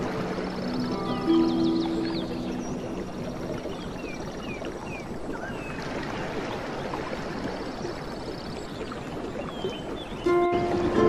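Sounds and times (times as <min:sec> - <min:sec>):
flowing water rushing: 0:00.0 - 0:11.0.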